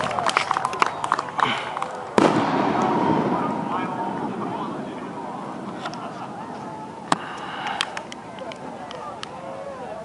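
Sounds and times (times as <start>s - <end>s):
firework shell bang: 2.2s - 7.4s
rolling echo: 2.2s - 9.1s.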